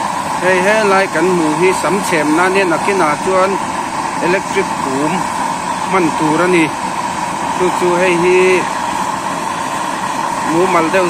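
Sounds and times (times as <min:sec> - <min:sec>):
fire rushing: 0:00.0 - 0:11.0
hair dryer blowing: 0:00.0 - 0:11.0.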